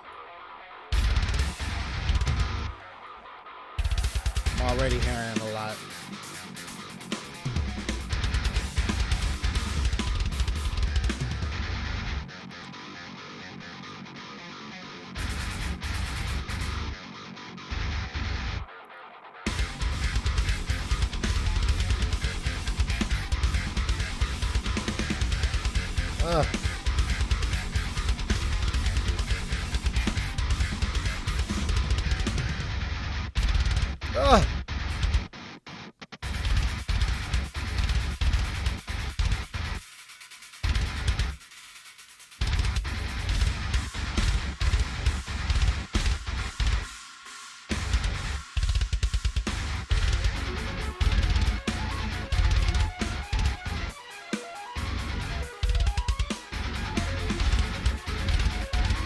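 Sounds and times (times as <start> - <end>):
heavy metal music: 0.0 - 39.8, 40.4 - 41.4, 42.4 - 59.0
fast double-bass drumming: 3.8 - 5.7, 7.5 - 11.7, 19.5 - 32.8, 36.2 - 39.8, 40.6 - 41.4, 42.4 - 46.8, 47.7 - 54.0, 54.8 - 59.0.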